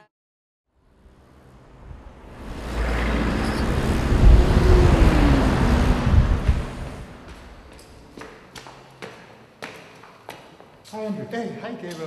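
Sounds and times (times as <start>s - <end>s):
road vehicle passing by: 0.8s - 8.2s.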